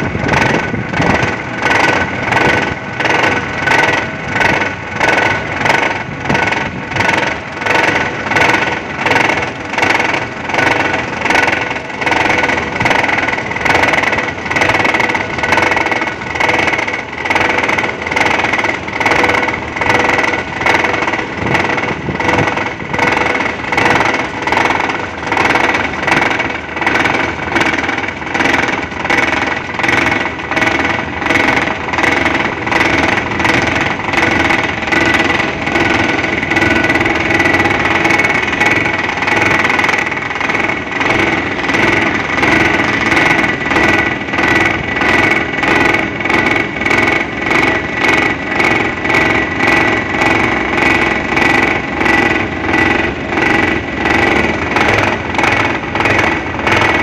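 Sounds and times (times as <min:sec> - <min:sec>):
excavator engine: 0:00.0 - 0:57.0
vibratory pile hammer whine: 0:00.0 - 0:57.0.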